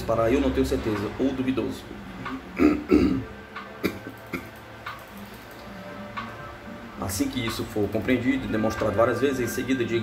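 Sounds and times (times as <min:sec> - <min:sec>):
faint background music: 0:00.0 - 0:10.0
man's throaty vocal sounds: 0:02.6 - 0:04.5.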